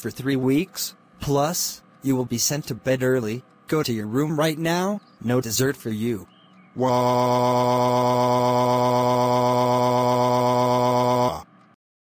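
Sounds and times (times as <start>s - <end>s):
synthesized voice wailing: 6.8s - 11.5s.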